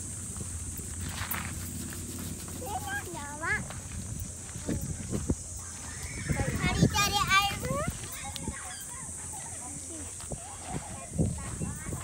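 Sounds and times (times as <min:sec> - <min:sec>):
steady high hiss: 0:00.0 - 0:11.2
children squealing: 0:05.6 - 0:09.6.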